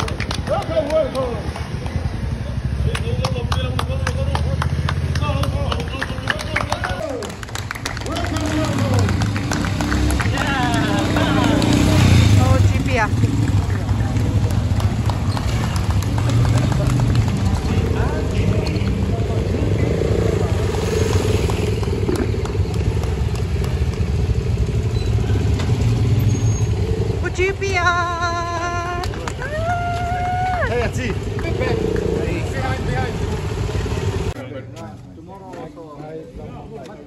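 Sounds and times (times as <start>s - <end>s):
people talking: 0.0s - 7.4s, 8.0s - 9.2s, 10.2s - 15.0s, 16.2s - 21.0s, 27.2s - 33.3s, 34.3s - 37.0s
motorcycle engines at low revs: 0.0s - 37.0s
voices in background: 10.1s - 23.8s.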